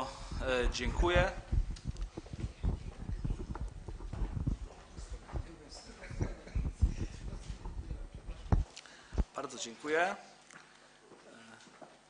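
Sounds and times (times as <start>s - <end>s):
hard-soled footsteps on wooden floor: 0.2s - 9.3s.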